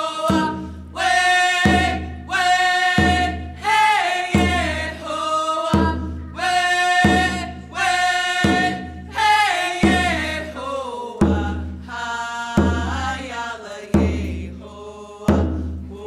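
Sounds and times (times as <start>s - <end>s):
group singing in unison: 0.0s - 16.0s
frame drum strokes: 0.2s - 10.6s.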